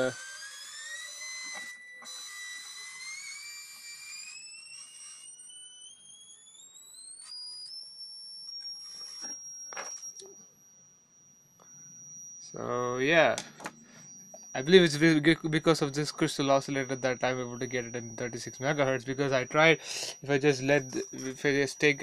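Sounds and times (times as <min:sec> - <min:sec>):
oscillator whistling tone: 0:00.0 - 0:13.2, 0:13.8 - 0:22.0.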